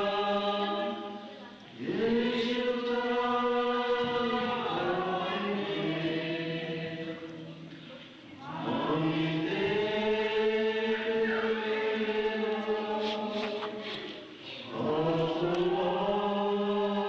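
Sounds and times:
chanting: 0:00.0 - 0:17.0.

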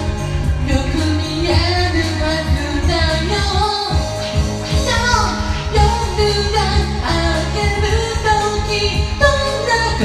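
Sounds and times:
pop band backing track: 0:00.0 - 0:10.0
woman singing: 0:00.4 - 0:10.0.

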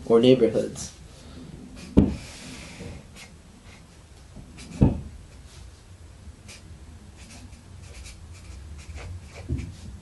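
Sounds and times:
low steady hum: 0:00.0 - 0:10.0
pen scratching on paper: 0:04.6 - 0:04.8, 0:07.2 - 0:09.9.

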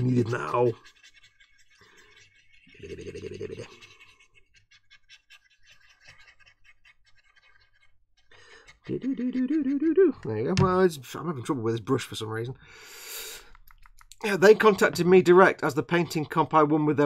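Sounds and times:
paintbrush scratching on plastic: 0:00.0 - 0:07.6
person humming: 0:08.8 - 0:10.3.

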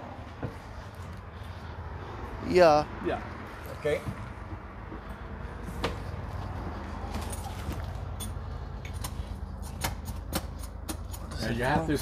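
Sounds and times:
sharp metallic clicks and rattles: 0:07.2 - 0:12.0.

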